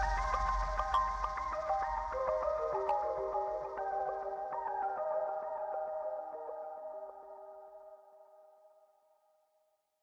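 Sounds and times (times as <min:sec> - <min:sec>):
held music chords: 0:00.0 - 0:04.5.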